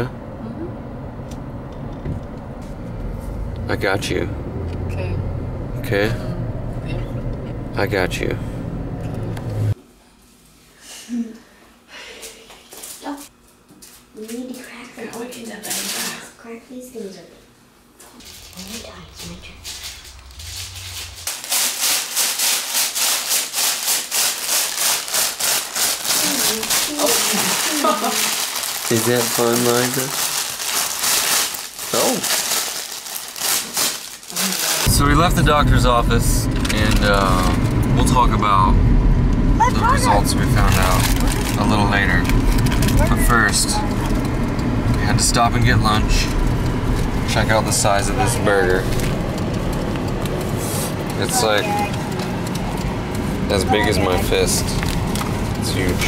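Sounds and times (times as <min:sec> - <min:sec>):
low rumble inside car: 0:00.0 - 0:09.8, 0:18.2 - 0:21.3, 0:34.8 - 0:56.0
paper crinkling: 0:18.2 - 0:34.9, 0:40.7 - 0:43.2.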